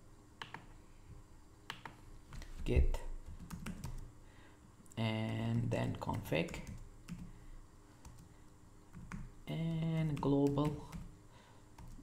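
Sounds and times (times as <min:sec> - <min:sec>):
low steady hum: 0:00.0 - 0:12.0
computer clicks: 0:01.7 - 0:02.0.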